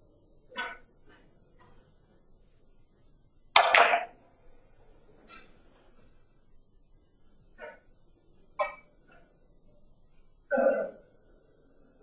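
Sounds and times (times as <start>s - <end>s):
billiard balls clicking: 3.6s - 4.2s, 8.6s - 9.0s.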